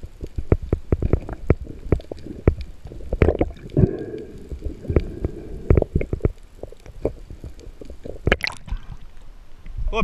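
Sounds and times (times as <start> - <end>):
sharp knocks and clicks underwater: 0.0 - 9.1
dull underwater rumble: 0.0 - 9.9.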